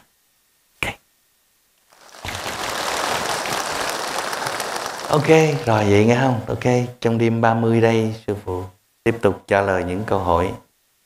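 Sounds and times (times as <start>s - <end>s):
large crowd applauding: 1.9s - 6.3s.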